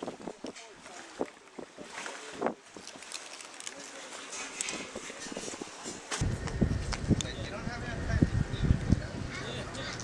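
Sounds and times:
wind on microphone: 0:04.6 - 0:10.0.

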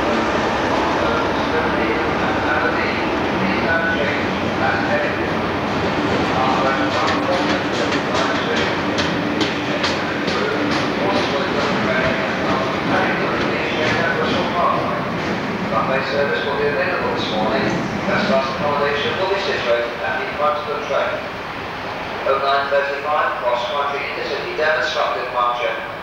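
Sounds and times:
train rumble: 0:00.0 - 0:26.0
train wheels clicking over rail joints: 0:06.0 - 0:15.6.

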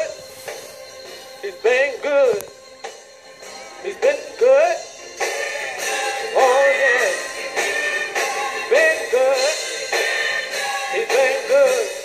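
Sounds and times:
instrumental accompaniment with beat: 0:00.0 - 0:12.0
man singing gospel: 0:01.4 - 0:02.5, 0:03.8 - 0:12.0.

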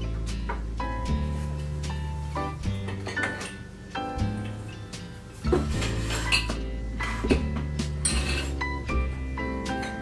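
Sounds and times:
background music: 0:00.0 - 0:10.0
glass jars clinking: 0:02.9 - 0:03.6, 0:05.8 - 0:06.6, 0:08.0 - 0:08.6.

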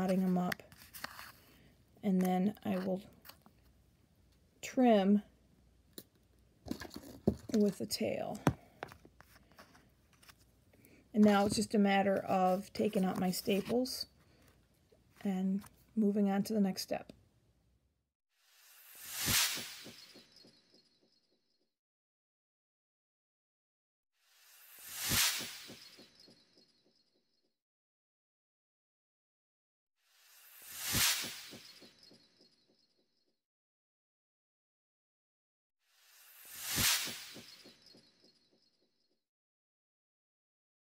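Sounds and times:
whoosh: 0:18.5 - 0:20.4, 0:24.3 - 0:26.4, 0:30.2 - 0:32.3, 0:36.0 - 0:38.1.

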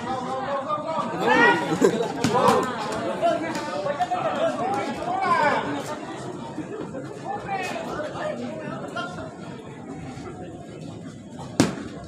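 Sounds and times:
babble of voices: 0:00.0 - 0:11.6.

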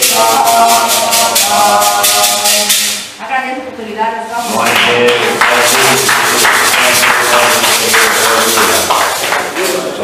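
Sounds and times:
music: 0:00.0 - 0:03.0
congregation clapping: 0:04.6 - 0:10.0.

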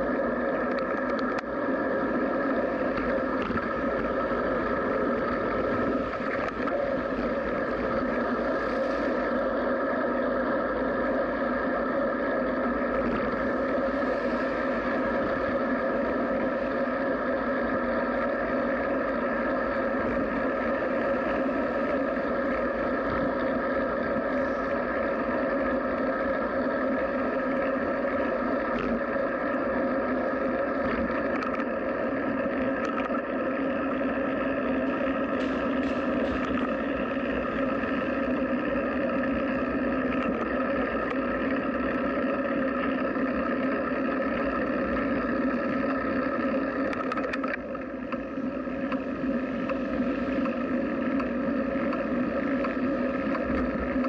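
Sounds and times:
bicycle rolling noise: 0:00.0 - 0:10.3, 0:11.0 - 0:54.0
faint clicks: 0:00.5 - 0:01.6, 0:30.4 - 0:54.0.

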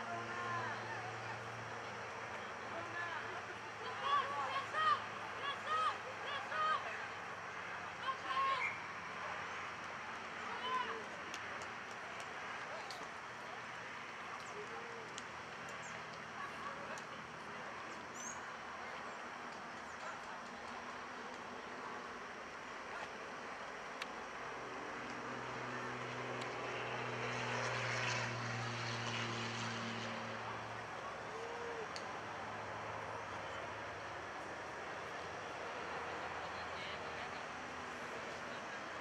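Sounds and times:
distant engine drone: 0:00.0 - 0:39.0
outdoor background noise: 0:00.0 - 0:39.0.

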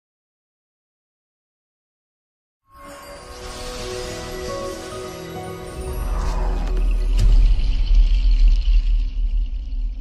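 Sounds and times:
high shimmering tone: 0:02.7 - 0:09.8
deep bass rumble: 0:05.9 - 0:10.0.

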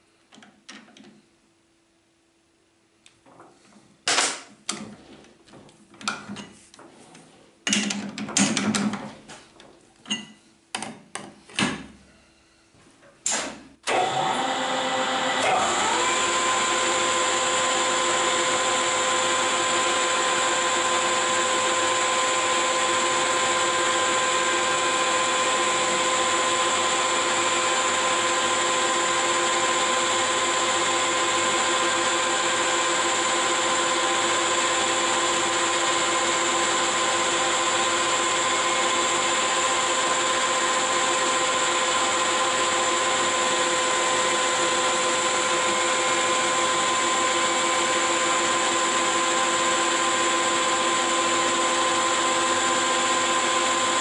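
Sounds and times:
metal lathe whining: 0:14.0 - 0:54.0.

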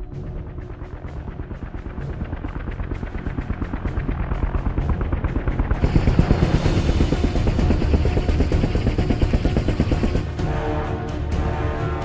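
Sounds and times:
aircraft engines running: 0:00.0 - 0:12.0.

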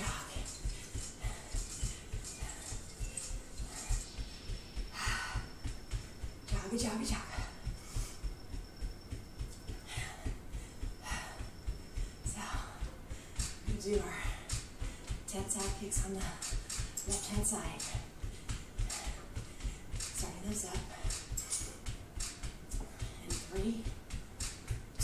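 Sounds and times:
bare feet thumping on mat: 0:00.0 - 0:25.0
faint music: 0:00.0 - 0:25.0.

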